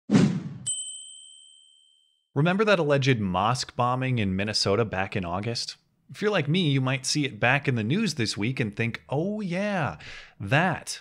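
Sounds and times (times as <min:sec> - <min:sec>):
bright high ding: 0:00.7 - 0:02.2.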